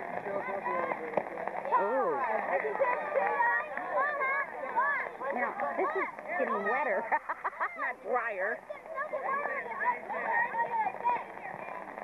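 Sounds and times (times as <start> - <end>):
people talking indistinctly: 0.0 - 12.0.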